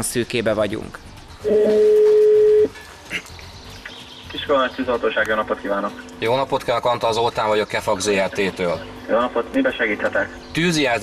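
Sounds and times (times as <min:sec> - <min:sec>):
telephone ringback tone: 0:01.4 - 0:02.7.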